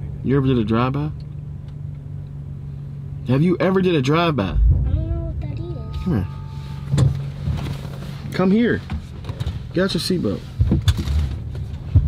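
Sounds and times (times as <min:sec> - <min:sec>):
car engine idling: 0:00.0 - 0:10.6.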